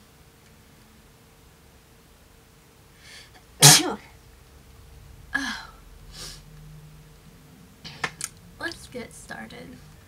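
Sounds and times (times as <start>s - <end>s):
woman sneezing: 3.6s - 4.1s.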